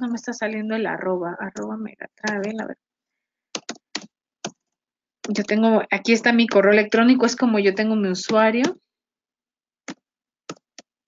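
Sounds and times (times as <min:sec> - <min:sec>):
keyboard key presses: 0:01.5 - 0:02.7, 0:03.5 - 0:05.6, 0:09.9 - 0:10.9.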